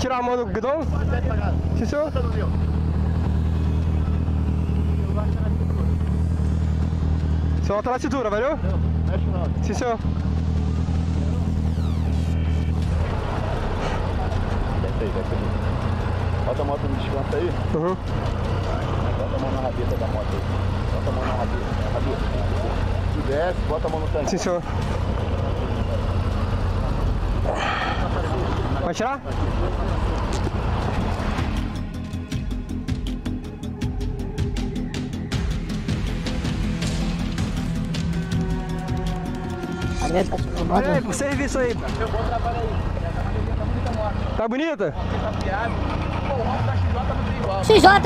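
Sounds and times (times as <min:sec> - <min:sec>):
street traffic: 0:00.0 - 0:48.0
motorcycle engine idling: 0:00.3 - 0:44.4.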